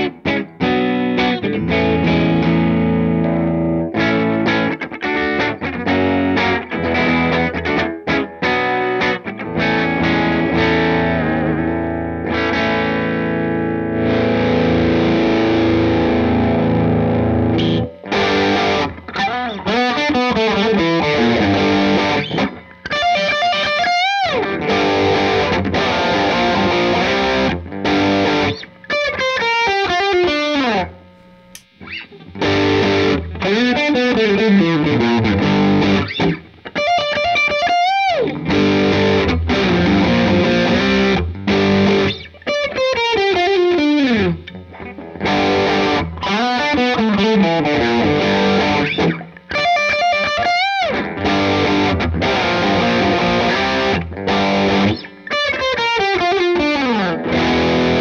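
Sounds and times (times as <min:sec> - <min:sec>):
distorted electric guitar: 0:00.0 - 0:58.0.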